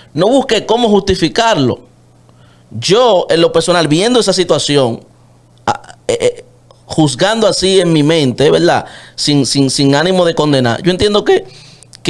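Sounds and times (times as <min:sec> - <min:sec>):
faint steady low hum: 0:00.0 - 0:12.0
man making wordless vocal sounds: 0:05.6 - 0:07.3.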